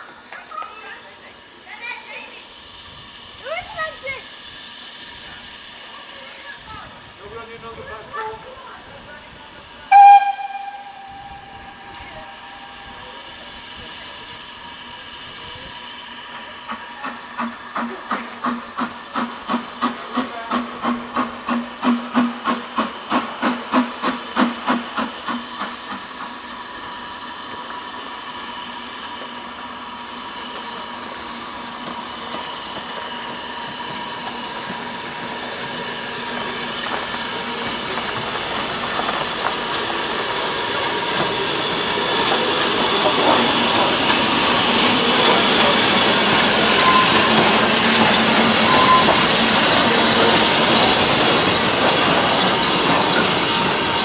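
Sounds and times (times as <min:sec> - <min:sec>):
rail noise: 0:00.0 - 0:54.0
steam hiss: 0:00.0 - 0:54.0
steam locomotive exhaust chuffs: 0:00.0 - 0:54.0
steam locomotive whistle: 0:09.9 - 0:13.2, 0:43.0 - 0:50.7.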